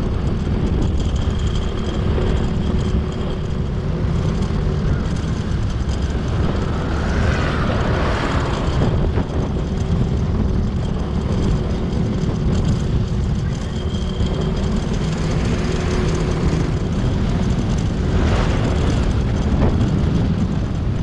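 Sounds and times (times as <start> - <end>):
vehicle road and engine rumble: 0.0 - 21.0
wind rush over microphone: 0.0 - 21.0.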